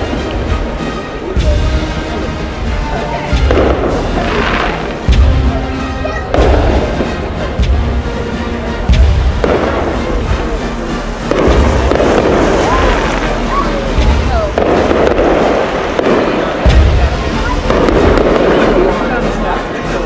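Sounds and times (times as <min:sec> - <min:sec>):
fireworks booming: 0:00.0 - 0:20.0
fireworks crackling: 0:00.0 - 0:20.0.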